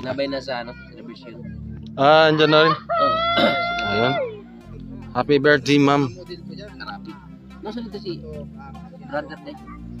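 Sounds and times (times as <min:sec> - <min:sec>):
rooster crowing: 0:02.7 - 0:04.4.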